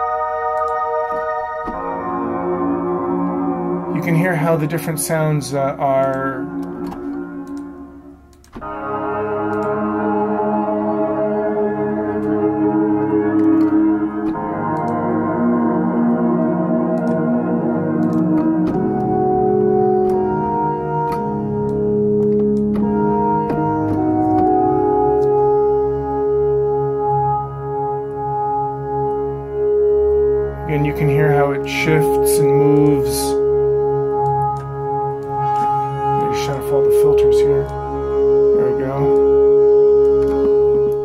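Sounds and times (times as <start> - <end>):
synthesizer chord: 0.0 - 41.0.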